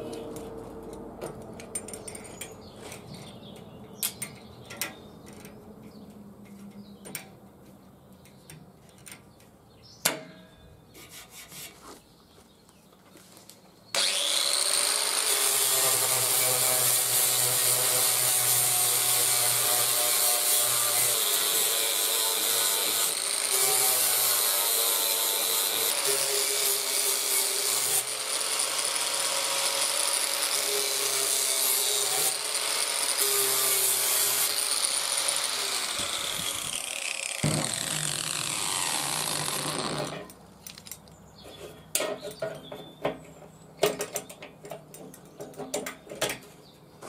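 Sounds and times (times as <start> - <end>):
angle grinder whining: 14.0 - 40.3.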